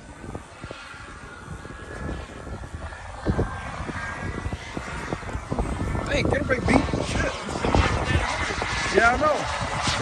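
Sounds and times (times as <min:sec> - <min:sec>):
model jet turbine roar: 0:00.0 - 0:10.0
wind buffeting microphone: 0:00.0 - 0:10.0.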